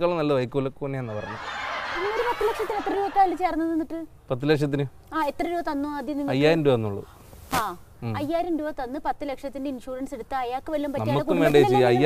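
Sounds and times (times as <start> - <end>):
woman laughing: 1.1 - 3.6.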